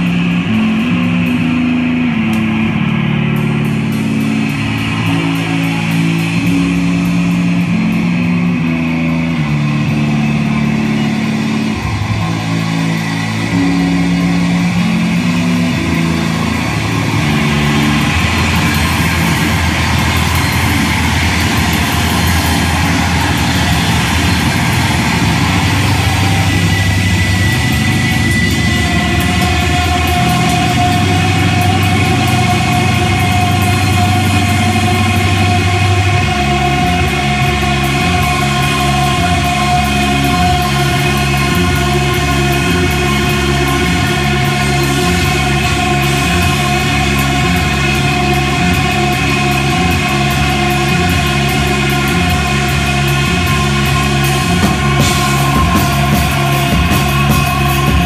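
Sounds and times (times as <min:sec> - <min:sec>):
bass guitar riff: 0:00.0 - 0:58.0
crashing cymbals: 0:00.0 - 0:58.0
drums: 0:00.0 - 0:58.0
live rock band: 0:00.0 - 0:58.0.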